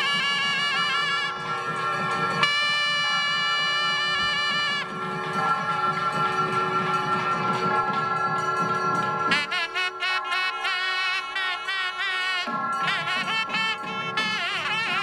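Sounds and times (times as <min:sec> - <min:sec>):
double-reed temple music: 0:00.0 - 0:15.0
steady drone: 0:00.0 - 0:15.0.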